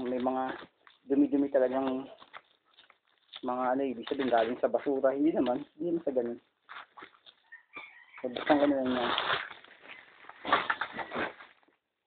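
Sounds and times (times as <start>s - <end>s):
plastic bags crinkling: 0.0s - 5.8s, 8.2s - 11.7s.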